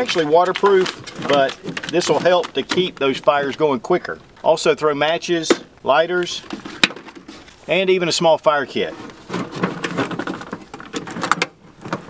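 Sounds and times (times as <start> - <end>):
clicks and knocks against metal: 0.0 - 3.1, 9.0 - 12.0
nylon pouch rustling: 0.0 - 3.1.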